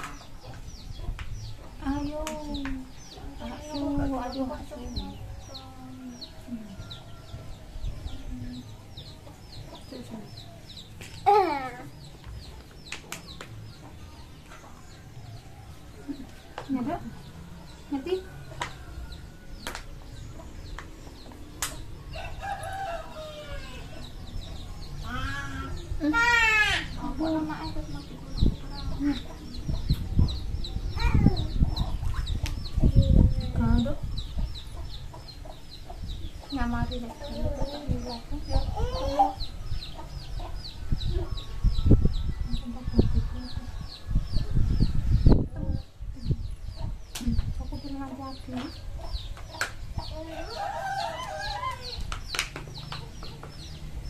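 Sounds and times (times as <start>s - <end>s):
rooster crowing: 22.1s - 24.0s, 50.3s - 52.0s.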